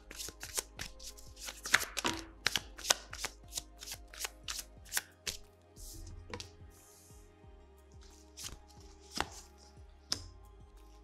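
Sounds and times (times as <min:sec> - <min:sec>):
cards snapping on wooden table: 0:00.1 - 0:05.4.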